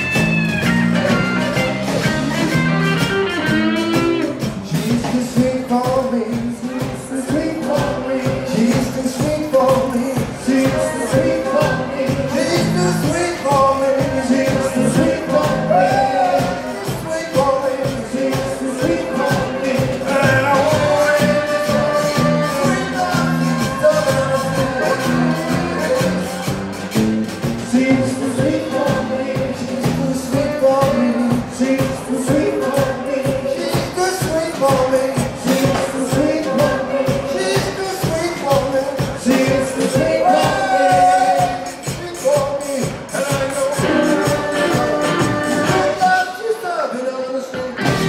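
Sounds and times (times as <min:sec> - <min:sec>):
electric bass: 0:00.0 - 0:41.6, 0:42.8 - 0:46.2, 0:47.6 - 0:48.0
acoustic and electric guitars: 0:00.0 - 0:42.0, 0:42.6 - 0:46.4, 0:47.4 - 0:48.0
drum kit: 0:00.0 - 0:46.6, 0:47.5 - 0:48.0
zydeco band playing: 0:00.0 - 0:48.0
vocalists singing: 0:03.8 - 0:26.7, 0:27.5 - 0:48.0.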